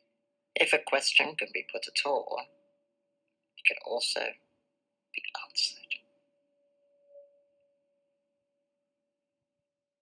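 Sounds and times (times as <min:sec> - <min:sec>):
faint steady pure tone: 0:00.0 - 0:09.1.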